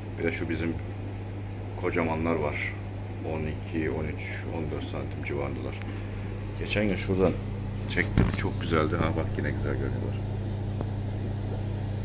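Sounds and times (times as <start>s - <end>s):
air pump humming: 0.0s - 12.0s.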